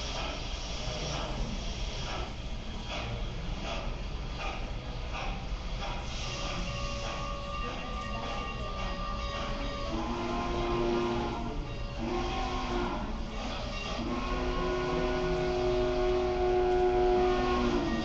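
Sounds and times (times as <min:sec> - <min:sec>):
locomotive chime horn: 0:06.7 - 0:18.0.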